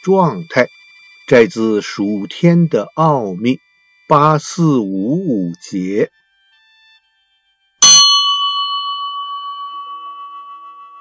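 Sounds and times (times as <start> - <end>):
soft low tone: 0.0 - 0.7, 1.3 - 6.1
bell ringing: 7.8 - 11.0.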